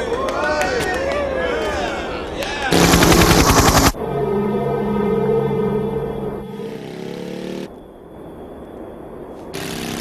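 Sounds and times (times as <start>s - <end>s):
machine-gun fire: 2.7s - 4.0s
sustained music chords: 2.8s - 7.8s.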